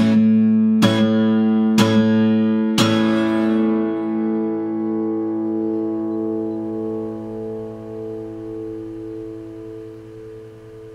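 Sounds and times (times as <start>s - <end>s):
acoustic guitar chord ringing: 0.0s - 10.9s.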